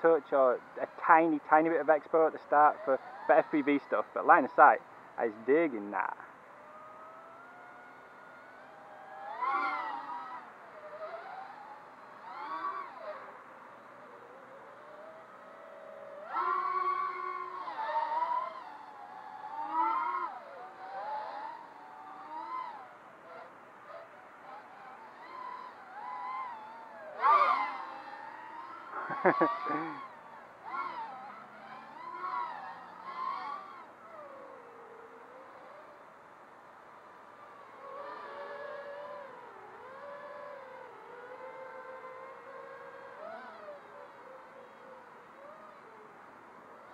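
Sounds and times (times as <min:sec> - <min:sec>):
quadcopter motors whining: 0:00.0 - 0:46.9.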